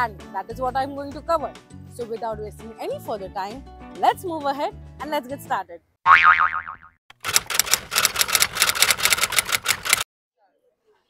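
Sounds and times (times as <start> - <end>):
typewriter clicks: 7.1 - 10.0.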